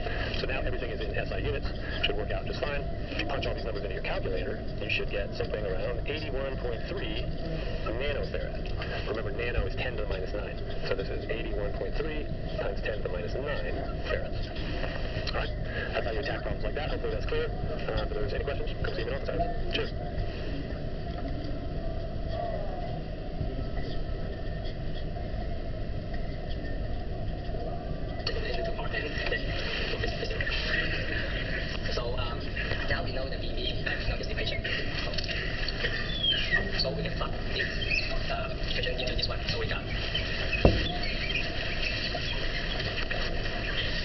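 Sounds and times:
faint voices: 0.0s - 44.0s
low rumbling background noise: 0.0s - 44.0s
room background noise: 0.0s - 44.0s
dull thump: 40.6s - 41.0s.

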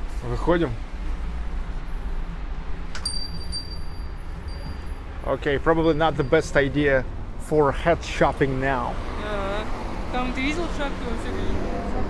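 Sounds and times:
street traffic rumble: 0.0s - 12.0s
door bell click: 3.0s - 4.9s
shop door bell chiming: 3.0s - 6.8s.

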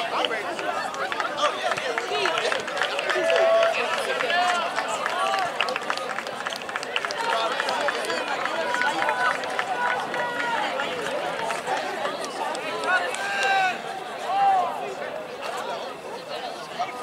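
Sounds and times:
spectators talking and calling: 0.0s - 17.0s.

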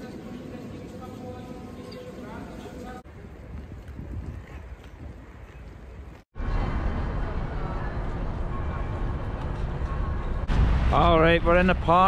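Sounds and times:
wind buffeting microphone: 3.1s - 6.2s.

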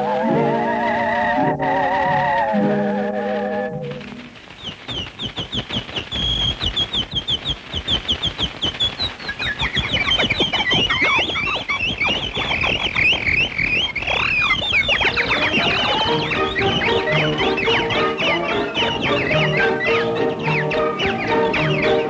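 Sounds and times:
dense patter: 2.4s - 22.0s
cartoon bird chirping: 4.6s - 22.0s.

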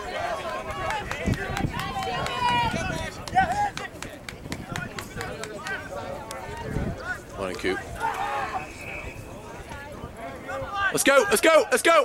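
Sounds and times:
men shouting calls: 0.0s - 12.0s.

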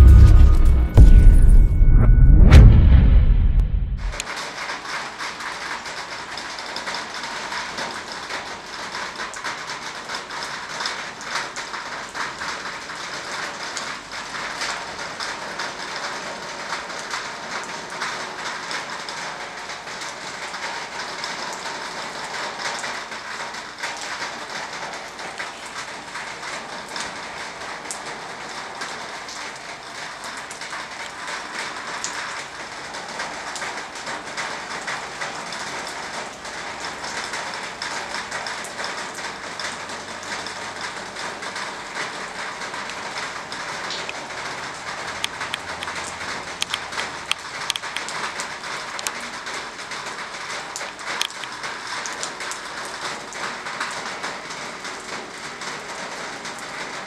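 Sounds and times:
steady rain falling: 4.1s - 57.0s.

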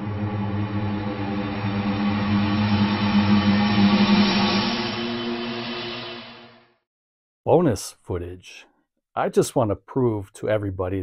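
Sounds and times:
low rumbling drone: 0.0s - 6.8s.

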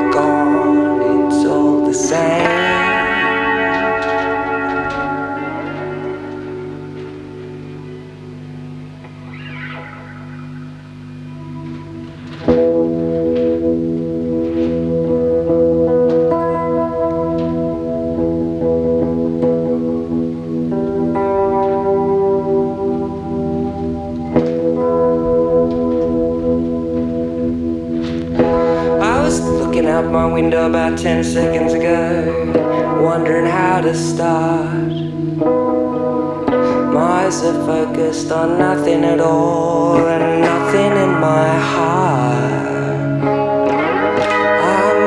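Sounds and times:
electric guitar chords ringing: 0.0s - 45.0s.

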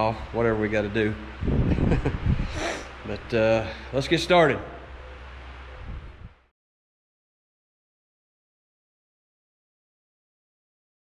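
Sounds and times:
low room hum: 0.0s - 6.5s.

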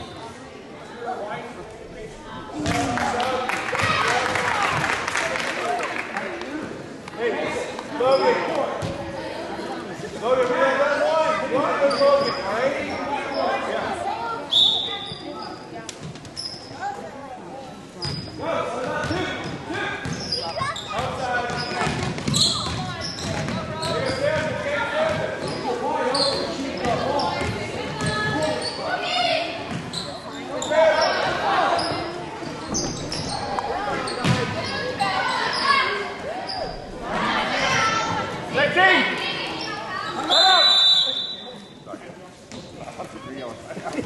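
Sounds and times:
spectators chatter: 0.0s - 44.0s
referee's whistle blast: 40.2s - 41.5s.

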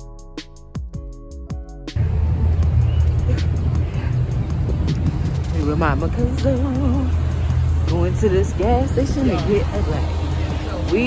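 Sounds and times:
traffic noise: 2.0s - 11.0s
wind rumble on microphone: 2.0s - 11.0s.

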